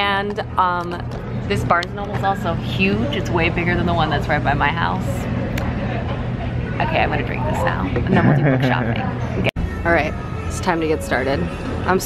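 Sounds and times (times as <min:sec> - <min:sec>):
murmur of background noise: 0:00.0 - 0:12.0
steady low hum: 0:00.0 - 0:12.0.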